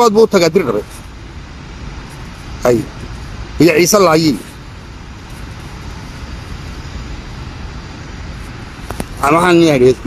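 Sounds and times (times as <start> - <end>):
low rumble with hiss: 0.0 - 10.0.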